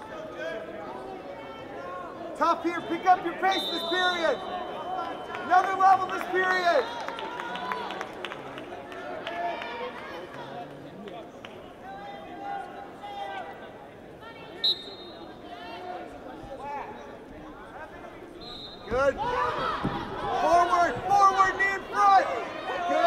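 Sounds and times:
crowd chatter: 0.0 - 23.0
referee's whistle blast: 3.3 - 5.5, 14.6 - 15.4, 18.4 - 19.1.

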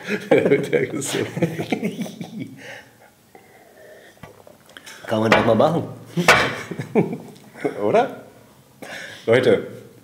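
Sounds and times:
men chuckling: 0.0 - 2.7, 6.1 - 7.9.

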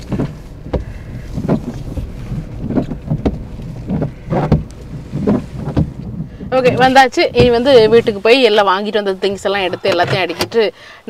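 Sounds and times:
knocks and bumps: 0.0 - 8.2
car rumble inside cabin: 0.0 - 10.8.

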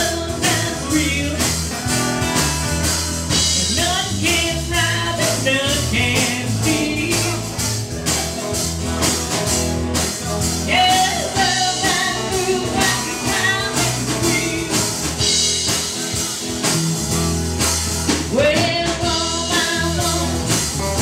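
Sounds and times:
woman singing: 0.0 - 1.6, 3.5 - 7.6, 10.6 - 15.0, 18.3 - 20.7
acoustic guitar: 0.0 - 21.0
drum kit: 0.0 - 21.0
electric bass: 0.0 - 21.0
electric guitar: 0.0 - 21.0.

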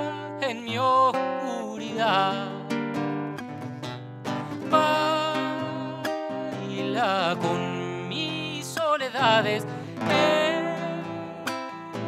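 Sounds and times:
acoustic guitar samba: 0.0 - 12.0.

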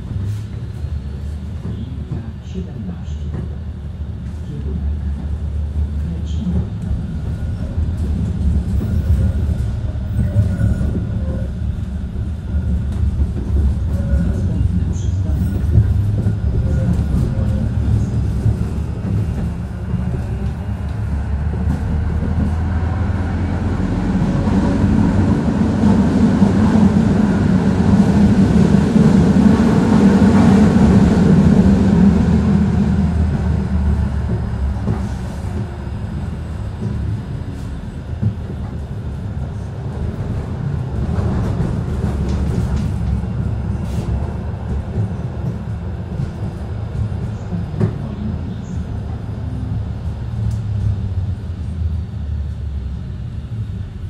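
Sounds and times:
tram wheels rumbling: 0.0 - 54.0.

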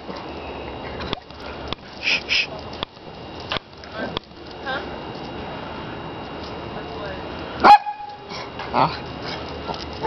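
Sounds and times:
dog barking: 7.6 - 8.1.

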